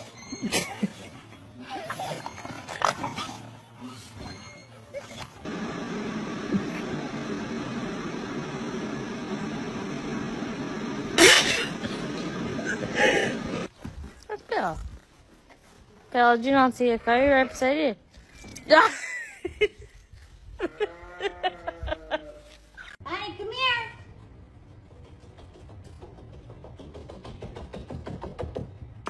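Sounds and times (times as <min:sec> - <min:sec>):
small electric fan running: 0:05.4 - 0:13.7.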